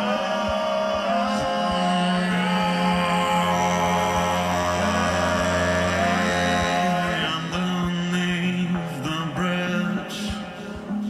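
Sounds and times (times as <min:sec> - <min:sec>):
looped droning vocal sounds: 0:00.0 - 0:09.4.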